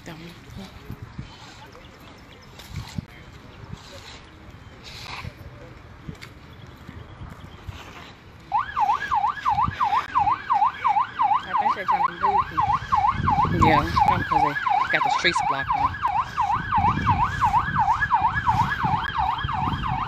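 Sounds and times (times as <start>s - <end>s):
emergency siren yelping: 8.5s - 20.0s.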